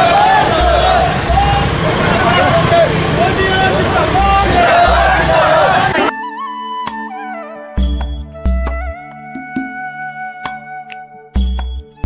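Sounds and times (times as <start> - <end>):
crowd chatter: 0.0 - 6.1
procession music melody: 0.0 - 10.6.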